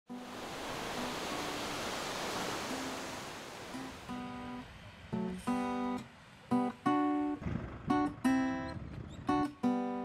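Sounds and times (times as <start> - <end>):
waves washing up a sandy beach: 0.1 - 6.5.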